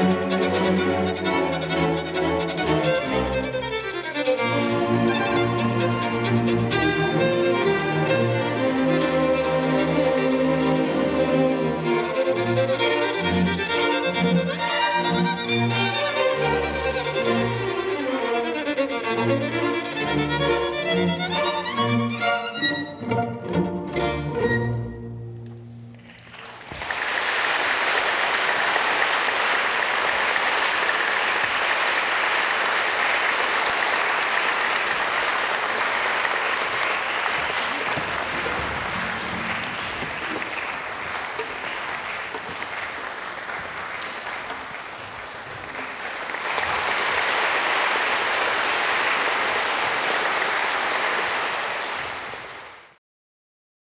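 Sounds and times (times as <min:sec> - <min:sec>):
audience applauding: 0:26.0 - 0:53.0.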